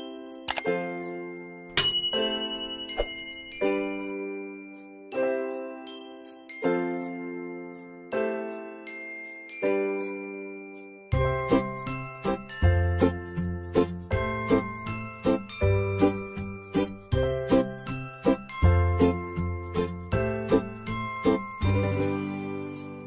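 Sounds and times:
bell-like chiming melody: 1.2s - 13.3s.

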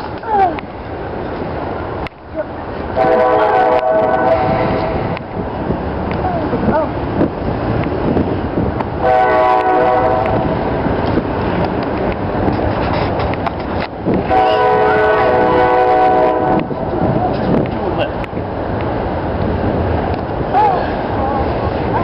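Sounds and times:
steady background noise: 0.0s - 22.0s
horn blasts: 3.0s - 5.2s, 9.0s - 10.6s, 14.2s - 16.8s.

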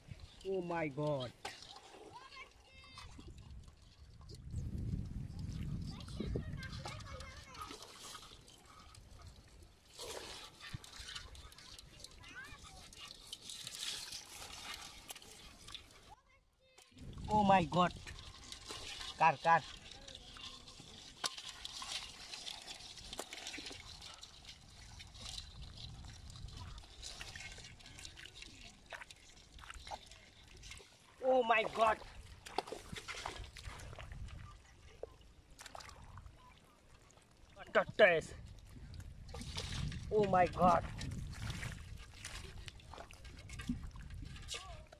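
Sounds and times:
hands splashing in shallow water: 18.0s - 36.4s, 38.5s - 44.9s.

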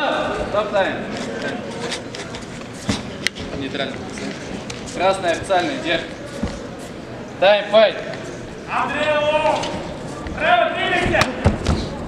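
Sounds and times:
referee calling out: 8.7s - 9.8s, 10.4s - 11.4s.

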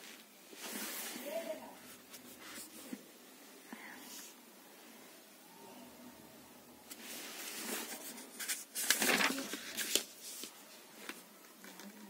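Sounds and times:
soft paper rustle: 0.0s - 3.0s, 6.9s - 12.0s
faint room hiss: 0.0s - 12.0s.

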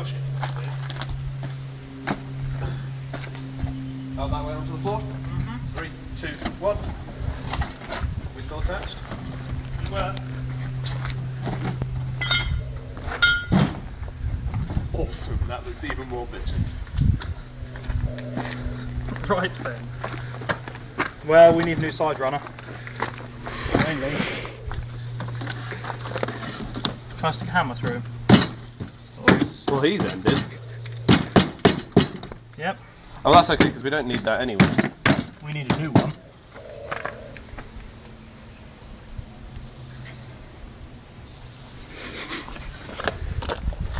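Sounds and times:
hammer striking metal: 12.2s - 12.6s, 13.2s - 13.8s.

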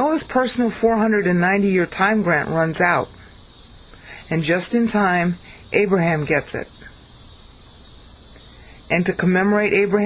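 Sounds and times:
cicadas calling: 0.0s - 10.0s.

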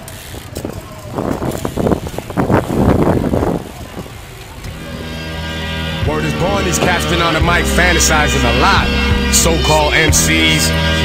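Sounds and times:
music: 4.7s - 11.0s.

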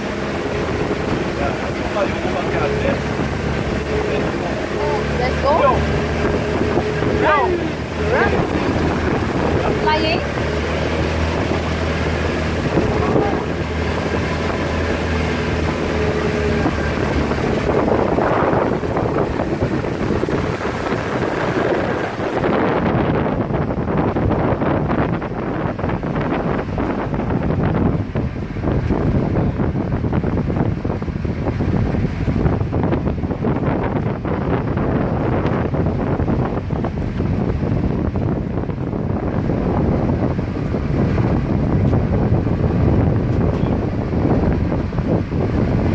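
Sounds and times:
motor boat engine humming: 0.0s - 45.9s
water rushing past hull: 0.0s - 45.9s
wind on microphone: 0.0s - 45.9s.

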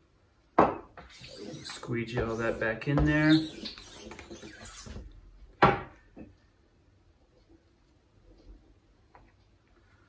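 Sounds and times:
squeegee scraping ink: 1.0s - 5.0s.

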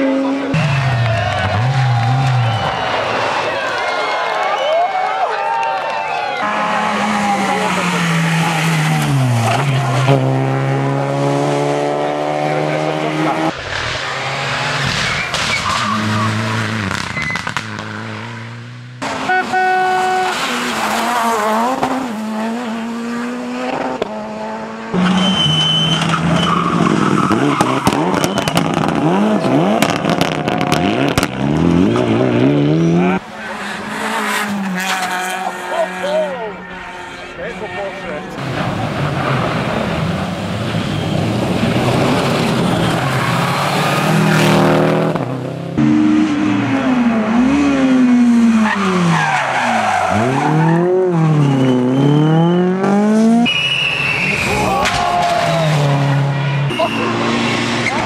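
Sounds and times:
rally car engines revving: 0.0s - 4.7s, 6.2s - 58.0s.

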